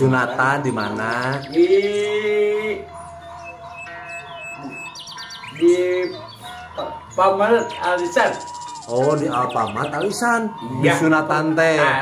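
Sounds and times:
thin background tones: 0:00.0 - 0:12.0
faint high bird chirps: 0:00.6 - 0:11.5.

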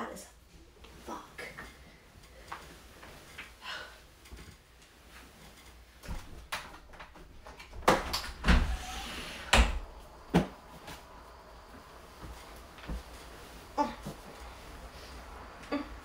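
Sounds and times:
bedding and clothing rustling: 0:00.0 - 0:16.0.

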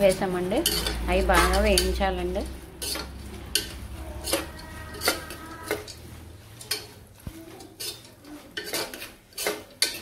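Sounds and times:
metal spoon scraping cooker: 0:00.0 - 0:10.0.

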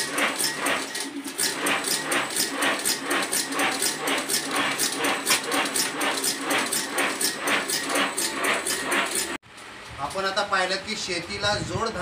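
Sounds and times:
machine rhythmic mechanical clatter: 0:00.0 - 0:09.4.

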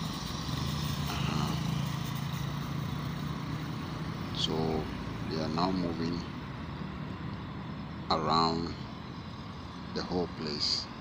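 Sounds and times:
cars driving past: 0:00.0 - 0:11.0
low engine hum: 0:00.0 - 0:11.0.

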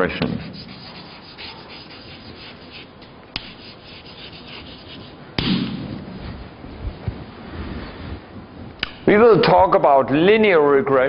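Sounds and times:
chalk scratching on board: 0:00.2 - 0:05.2.

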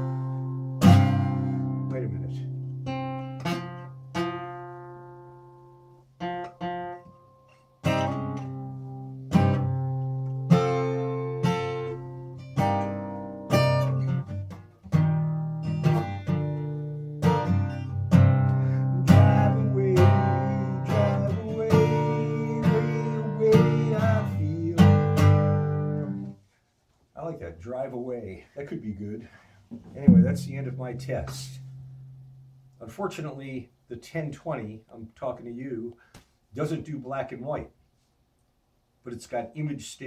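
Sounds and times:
acoustic guitar strumming: 0:00.0 - 0:26.4, 0:29.8 - 0:33.0.

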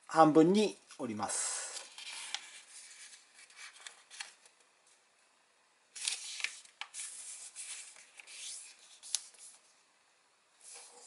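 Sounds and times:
paper rustling under fingers: 0:01.8 - 0:04.6, 0:06.0 - 0:09.6.

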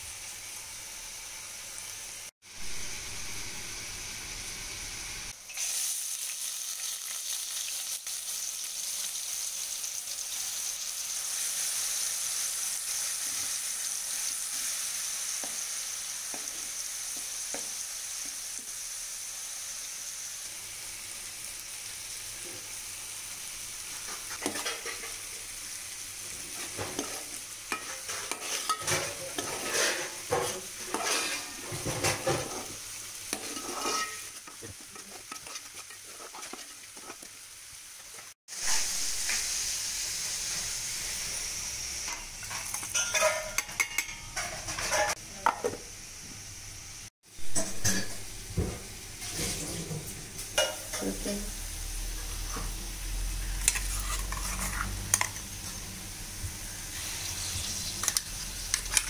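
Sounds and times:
onions sizzling in hot oil: 0:00.0 - 0:59.0
spoon scraping metal pot: 0:26.6 - 0:32.7, 0:33.3 - 0:37.3, 0:42.1 - 0:45.2, 0:53.6 - 0:55.5.

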